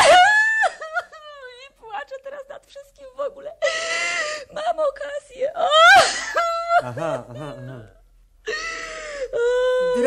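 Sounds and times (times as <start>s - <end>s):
woman crying in a wail: 0.0s - 1.4s, 5.6s - 7.6s, 8.5s - 10.0s.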